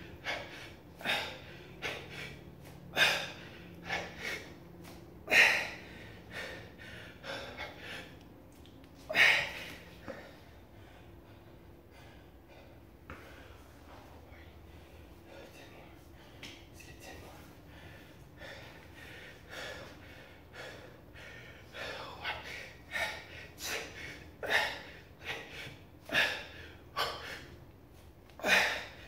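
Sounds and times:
man breathing hard: 0:00.0 - 0:29.0.

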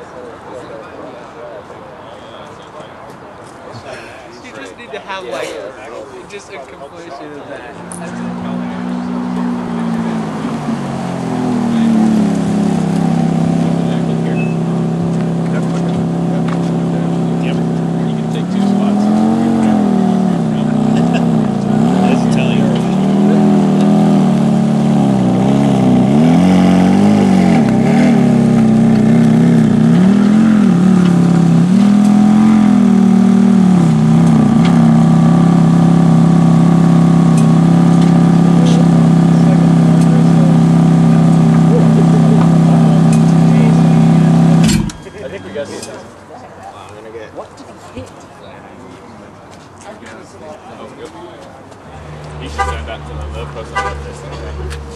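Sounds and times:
car engine revving and idling: 0:07.6 - 0:45.4, 0:51.7 - 0:54.9.

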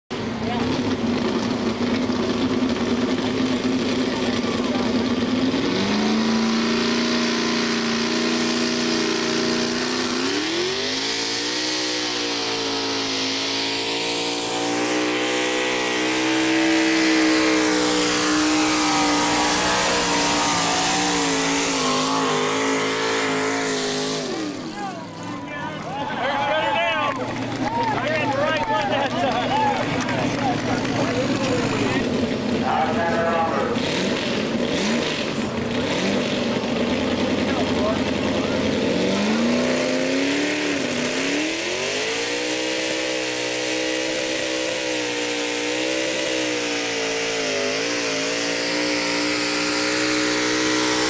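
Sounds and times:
truck engine revving under load: 0:00.1 - 0:51.0.

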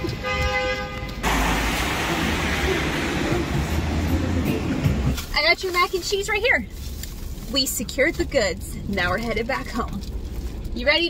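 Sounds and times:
heavy rain pouring: 0:01.2 - 0:06.4.

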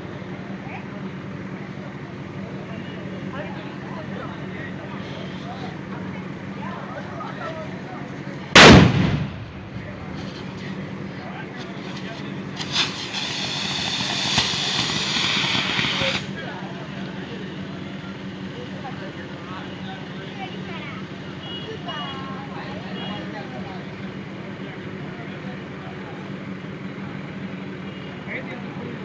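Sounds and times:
steady low hum: 0:00.0 - 0:21.2
crowd voices: 0:00.0 - 0:29.0
firework fountain hissing: 0:00.1 - 0:06.9, 0:08.5 - 0:25.6
firework sharp crack: 0:08.6 - 0:10.5, 0:12.0 - 0:16.4.

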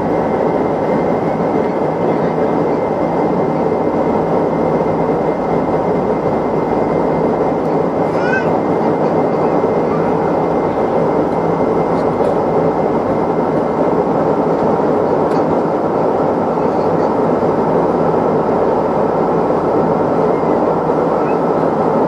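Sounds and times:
jet engine and airflow in cabin: 0:00.0 - 0:22.0.

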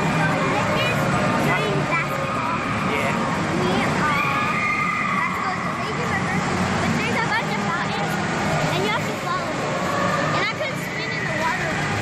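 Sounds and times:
crowd voices indoors: 0:00.0 - 0:12.0
children shouting: 0:01.6 - 0:06.2.

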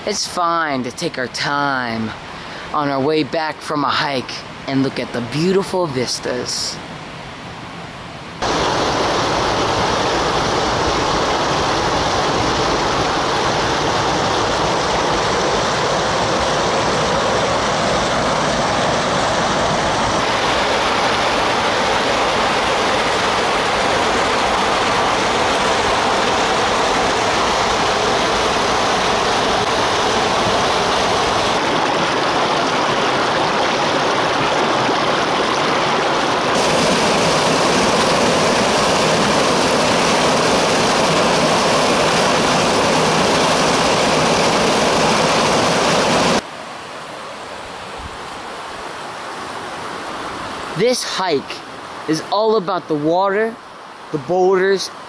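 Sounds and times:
stream water rushing: 0:00.0 - 0:55.0.

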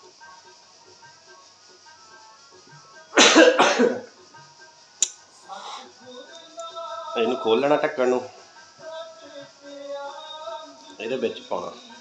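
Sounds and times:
man coughing: 0:03.2 - 0:04.0.

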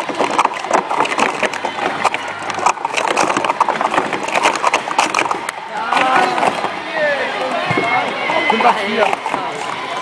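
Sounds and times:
people talking: 0:05.6 - 0:10.0.

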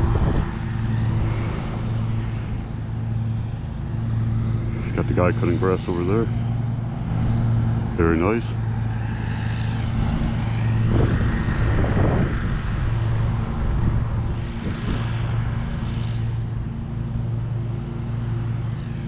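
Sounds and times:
distant lawn mower engine: 0:00.0 - 0:19.0.

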